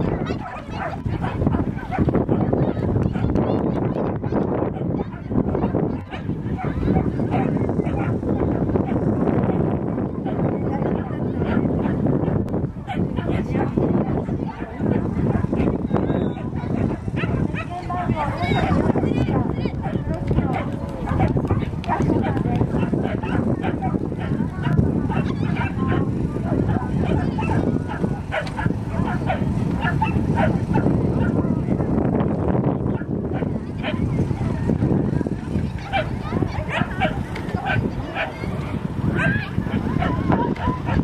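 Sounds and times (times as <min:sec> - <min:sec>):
voices outdoors: 0:00.0 - 0:41.0
dog yipping: 0:00.1 - 0:02.1, 0:04.8 - 0:08.2, 0:22.8 - 0:26.0, 0:35.8 - 0:38.4, 0:39.2 - 0:41.0.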